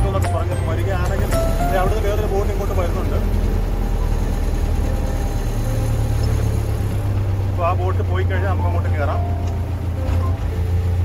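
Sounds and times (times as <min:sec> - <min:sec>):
motorboat engine droning: 0:00.0 - 0:11.0.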